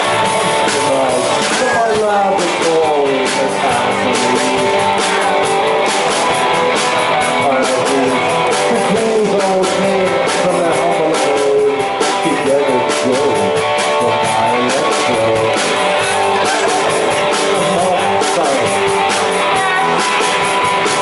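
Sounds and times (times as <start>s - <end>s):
bass guitar: 0.0s - 21.0s
drums and cymbals: 0.0s - 21.0s
electric guitar: 0.0s - 21.0s.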